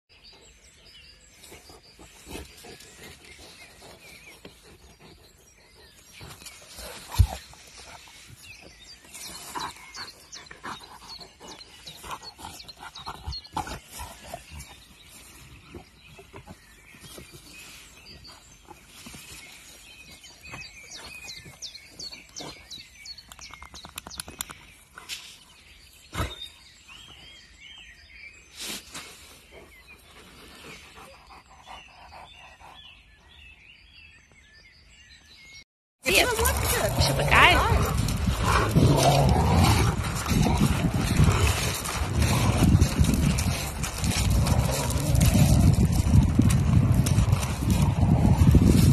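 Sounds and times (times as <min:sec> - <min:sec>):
movement through long grass: 0:36.1 - 0:48.9.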